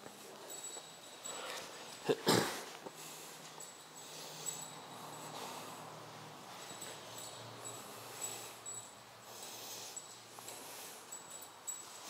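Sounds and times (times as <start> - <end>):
dog breathing and sniffing: 0.0 - 12.0.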